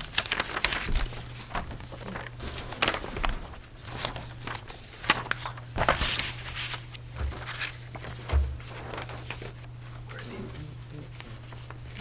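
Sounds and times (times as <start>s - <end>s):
paper pages rustling: 0.0s - 12.0s
steady low hum: 0.0s - 12.0s.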